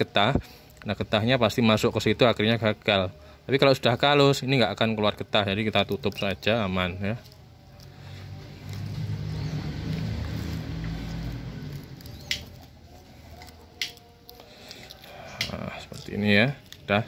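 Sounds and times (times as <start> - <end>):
plastic film rustling: 5.6 - 17.0.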